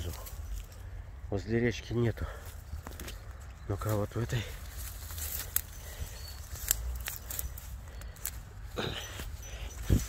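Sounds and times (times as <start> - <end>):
grass rustling as someone walks: 0.0 - 1.2, 2.1 - 10.0.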